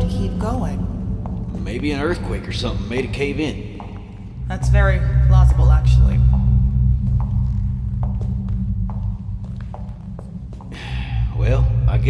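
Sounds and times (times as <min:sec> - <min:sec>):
low droning score: 0:00.0 - 0:12.0.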